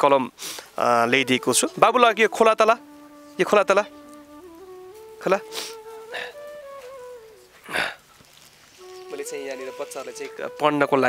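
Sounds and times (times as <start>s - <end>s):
soft flute music: 0.7s - 11.0s.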